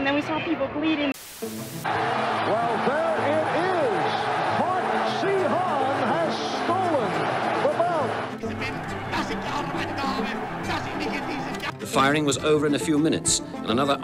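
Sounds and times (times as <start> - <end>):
background music with low chords: 1.4 - 14.0.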